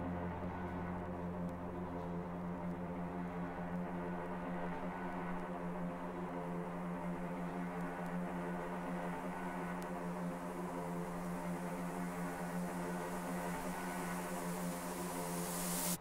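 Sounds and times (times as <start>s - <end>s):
sustained synth pad chord: 0.0s - 16.0s
high hiss: 4.4s - 16.0s.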